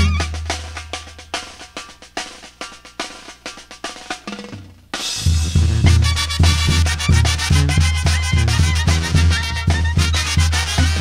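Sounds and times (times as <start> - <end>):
brass band playing: 0.0 - 1.0, 5.1 - 11.0
snare and bass drums: 0.0 - 11.0.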